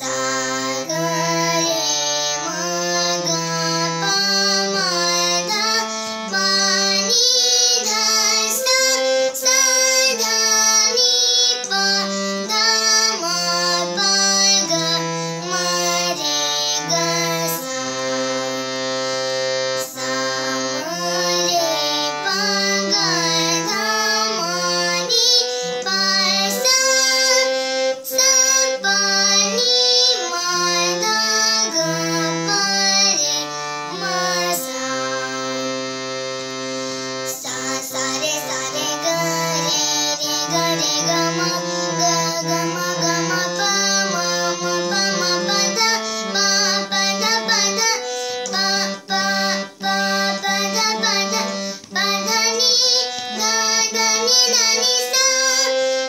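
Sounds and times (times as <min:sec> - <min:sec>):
girl singing: 0:00.0 - 0:56.0
harmonium playing: 0:00.0 - 0:56.0.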